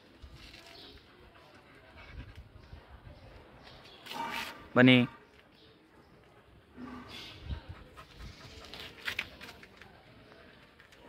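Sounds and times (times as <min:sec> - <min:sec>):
dog panting: 0:07.6 - 0:09.0.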